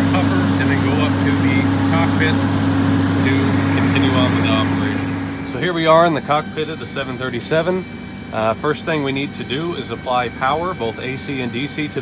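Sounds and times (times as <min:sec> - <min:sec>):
diesel engine droning: 0:00.0 - 0:12.0.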